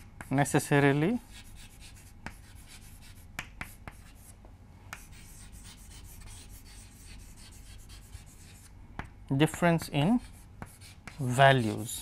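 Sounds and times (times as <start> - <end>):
chalk tapping on board: 0.0 - 0.6, 1.3 - 4.3, 4.9 - 12.0
chalk scratching on blackboard: 0.0 - 8.7, 9.4 - 12.0.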